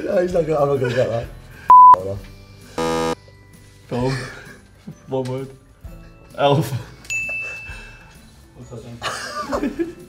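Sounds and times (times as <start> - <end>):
electronic buzzer: 2.8 - 3.2.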